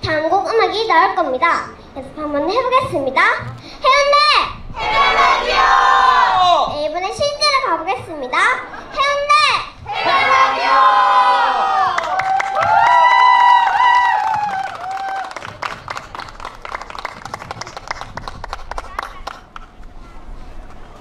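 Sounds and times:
children shouting a cheer: 9.9 - 15.4
sharp claps: 12.0 - 19.7.

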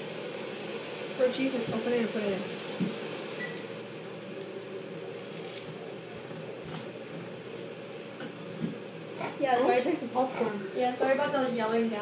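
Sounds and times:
fan-like hum: 0.0 - 12.0.

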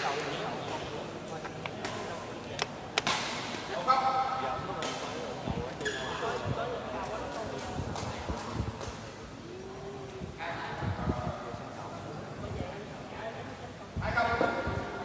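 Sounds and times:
voices in a hall: 0.0 - 15.0.

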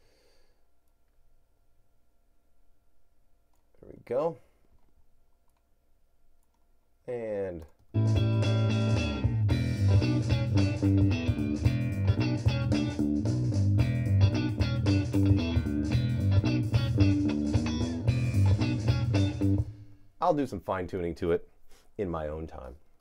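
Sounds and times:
electric bass: 8.0 - 19.8
electric guitar: 8.0 - 19.8
drums: 8.0 - 20.5.

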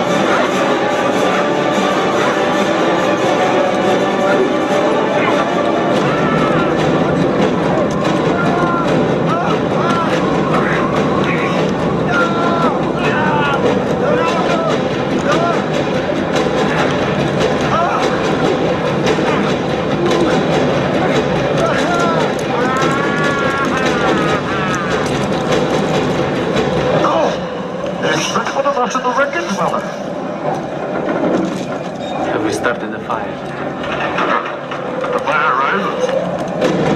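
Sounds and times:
aircraft roar: 0.0 - 36.9.

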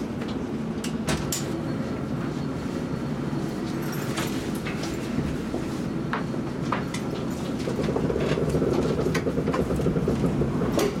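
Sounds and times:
train rumble inside car: 0.0 - 11.0
wheels clicking over rails: 6.8 - 11.0.

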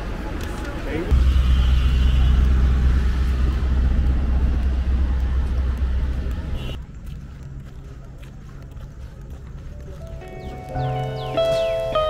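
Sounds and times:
low vehicle rumble: 1.1 - 8.6.

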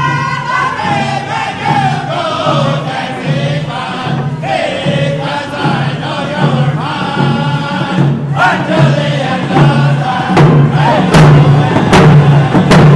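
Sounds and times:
hand drums beating: 0.0 - 12.9
men singing in unison: 0.0 - 12.9.

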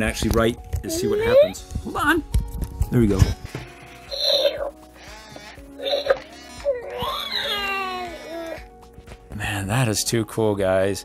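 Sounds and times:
toy speaker baby-like coos: 4.0 - 8.7.

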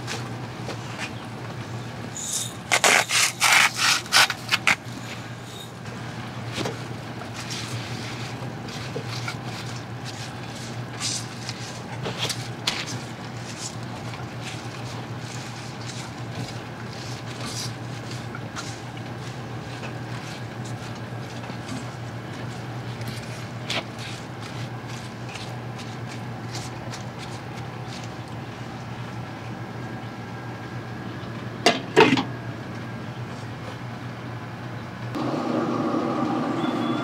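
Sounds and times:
steady low hum: 0.0 - 37.0
spatula scraping leaves in pan: 7.3 - 28.2.

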